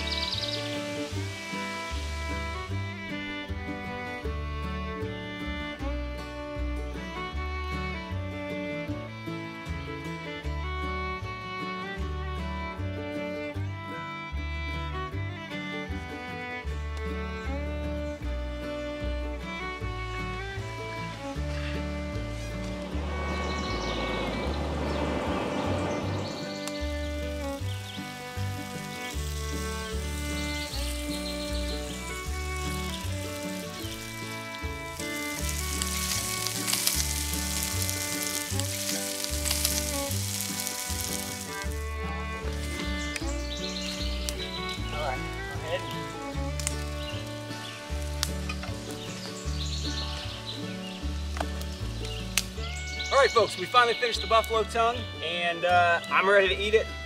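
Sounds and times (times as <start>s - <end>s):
meat sizzling in skillet: 0.0s - 2.8s, 26.4s - 41.8s
background music with bass line: 0.0s - 57.0s.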